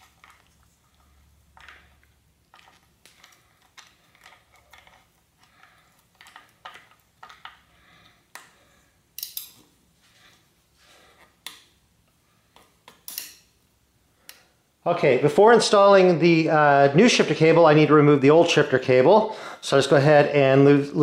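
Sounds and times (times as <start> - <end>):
screwdriver clicks and scrapes: 9.2 - 9.7.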